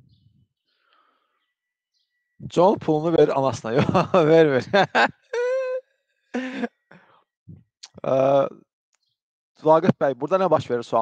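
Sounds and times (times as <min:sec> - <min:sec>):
man chuckling: 0:03.7 - 0:05.8, 0:06.4 - 0:06.7.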